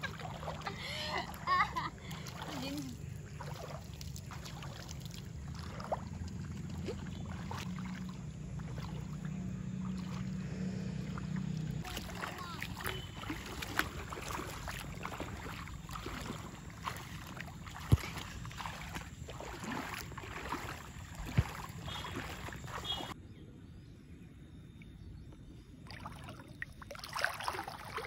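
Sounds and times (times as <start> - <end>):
feet wading through water: 0.0 - 23.2, 25.7 - 28.0
water splashing and sloshing: 0.0 - 23.2, 24.7 - 28.0.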